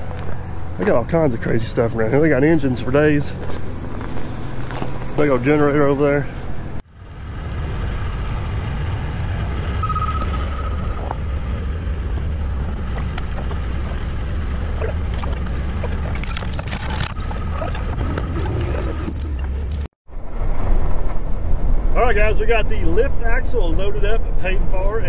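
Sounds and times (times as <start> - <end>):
chain and metal clinking: 15.8 - 19.9.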